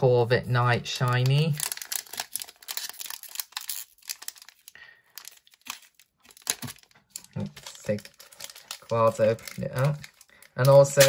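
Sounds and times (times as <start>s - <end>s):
foil wrapper crinkling: 0.9s - 11.0s.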